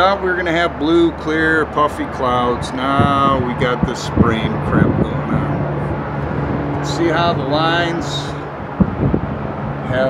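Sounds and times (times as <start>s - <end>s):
highway traffic noise: 0.0s - 10.0s.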